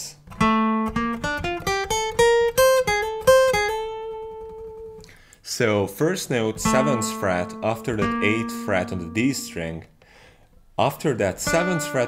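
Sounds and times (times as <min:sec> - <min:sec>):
acoustic guitar picked notes: 0:00.2 - 0:10.2, 0:10.8 - 0:12.0.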